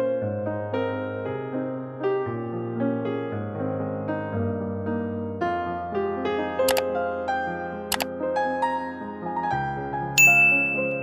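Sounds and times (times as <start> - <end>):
soft piano music: 0.0 - 11.0
bright bell ding: 10.2 - 11.0.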